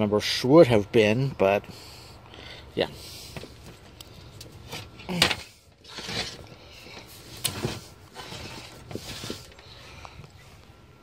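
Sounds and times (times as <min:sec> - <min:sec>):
handling clicks and rustles: 0:03.0 - 0:10.8.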